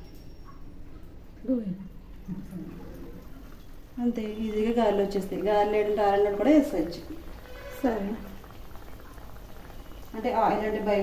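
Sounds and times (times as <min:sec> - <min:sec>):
food deep-frying in hot oil: 0:00.0 - 0:11.0.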